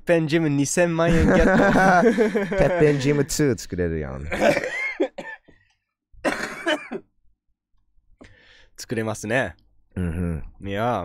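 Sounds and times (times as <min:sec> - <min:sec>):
man coughing: 0:04.3 - 0:05.5, 0:06.2 - 0:07.1.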